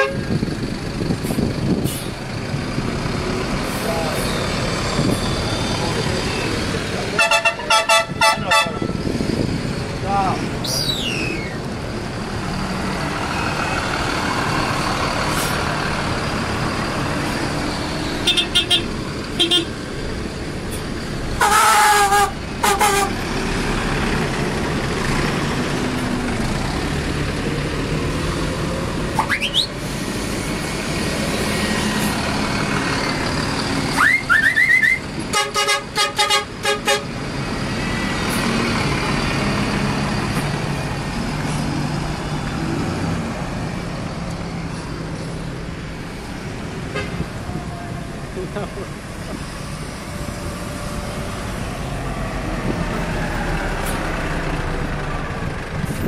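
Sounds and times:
bus horns tooting: 0.0 - 0.4, 7.1 - 9.0, 18.0 - 19.8, 21.4 - 23.3, 33.9 - 37.2, 46.8 - 47.4
bus engines rumbling: 0.0 - 56.0
rising whistles: 10.7 - 11.6.

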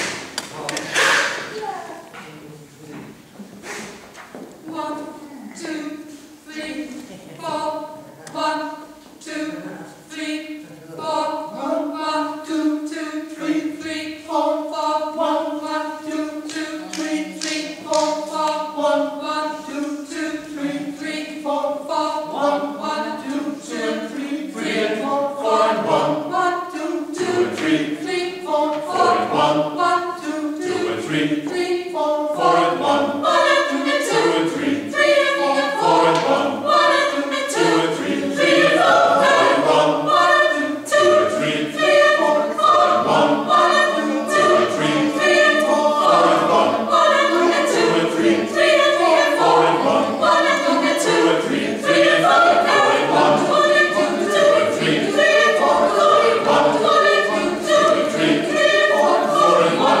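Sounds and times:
mixed choir singing a cappella: 0.0 - 1.5, 4.6 - 60.0.

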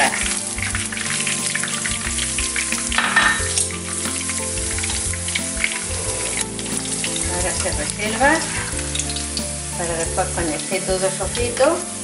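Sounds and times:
garlic sizzling in oil: 0.0 - 12.0
utensil stirring in pan: 0.0 - 12.0.

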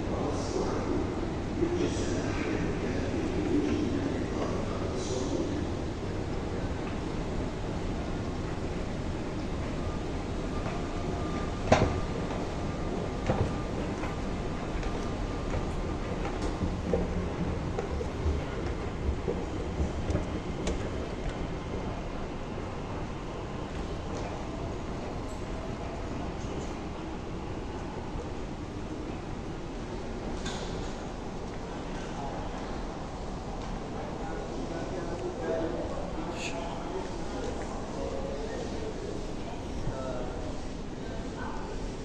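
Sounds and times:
metro station rumble: 0.0 - 42.0.

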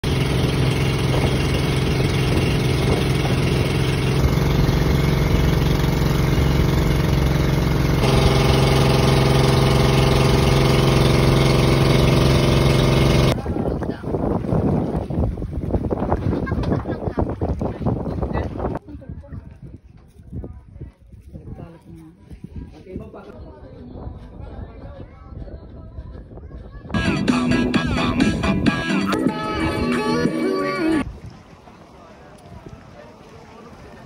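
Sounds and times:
boat engine droning: 0.0 - 13.4
rushing water: 31.0 - 34.0.

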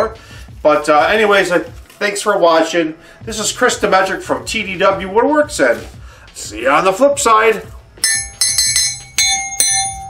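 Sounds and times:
bright metallic bell strikes: 8.0 - 10.0.

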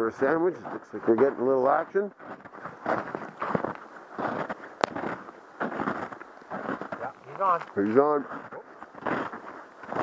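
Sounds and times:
footsteps crunching in snow: 0.0 - 10.0.

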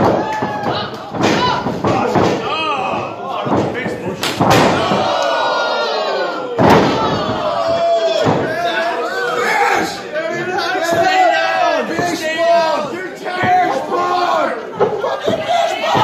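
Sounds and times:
shouting voices: 0.0 - 16.0.

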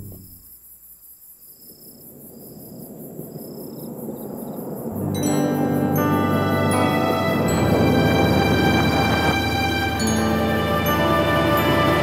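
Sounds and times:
low rumble: 0.0 - 0.4
cricket trilling: 0.0 - 11.9.

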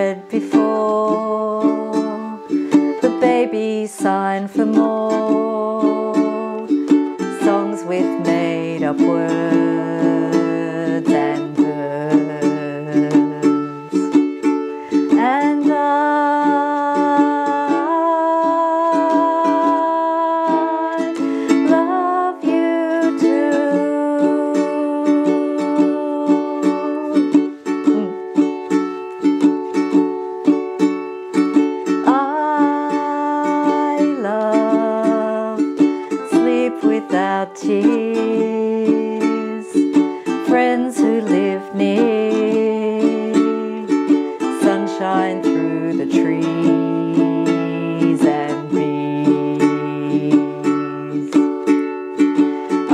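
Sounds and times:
woman singing children's song: 0.0 - 30.1, 31.4 - 52.9
ukulele strumming: 0.0 - 52.9.

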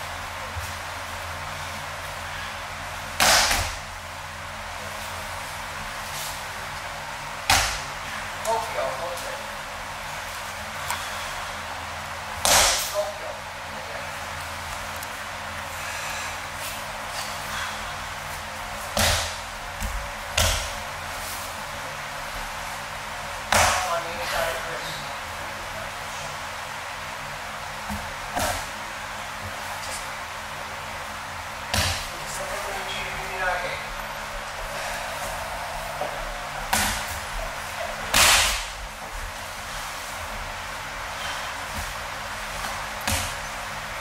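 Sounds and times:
hand slapping mat: 3.1 - 3.9, 7.4 - 7.9, 12.4 - 13.0, 18.8 - 20.8, 23.4 - 23.9, 27.8 - 28.8, 31.6 - 32.1, 35.0 - 39.1, 41.6 - 43.6
body landing on mats: 41.7 - 43.4.

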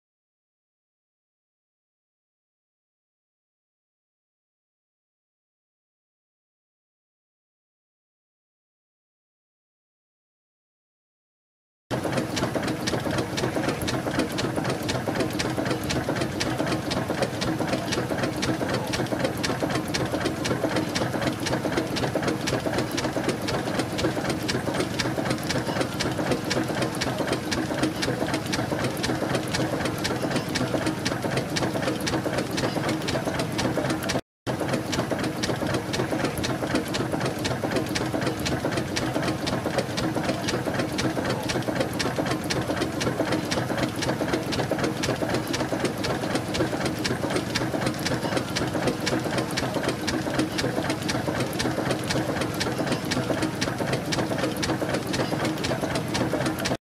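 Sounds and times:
steam tractor mechanical clatter: 11.9 - 56.8.

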